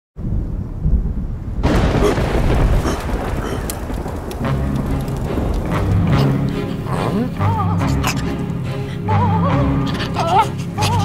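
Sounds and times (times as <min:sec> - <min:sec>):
thunder rumbling: 0:00.2 - 0:09.1
lightning crack with hissing crackle: 0:00.9 - 0:07.1.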